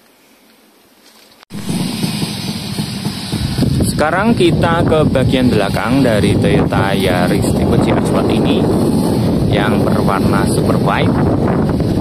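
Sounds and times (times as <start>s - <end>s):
wind noise on microphone: 1.5s - 12.0s.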